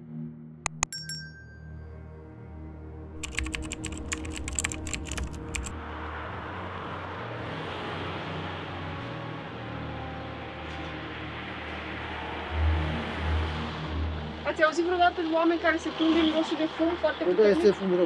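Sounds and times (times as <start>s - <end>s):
sharp clicks: 0.7s - 1.0s, 3.2s - 5.7s.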